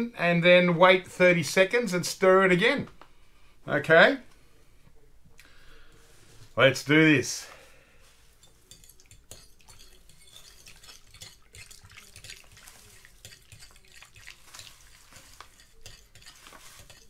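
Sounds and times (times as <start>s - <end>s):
fork clinking in glass bowl: 8.4s - 17.0s.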